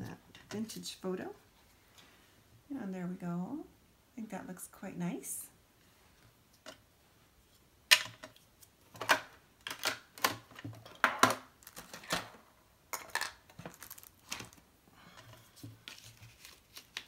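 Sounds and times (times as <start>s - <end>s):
paper and plastic rustling: 8.9s - 12.4s, 13.0s - 14.6s, 15.2s - 17.0s.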